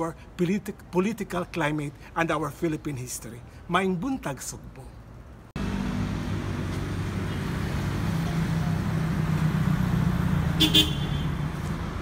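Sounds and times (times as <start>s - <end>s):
road noise: 0.0s - 12.0s
vehicle engine humming: 4.7s - 12.0s.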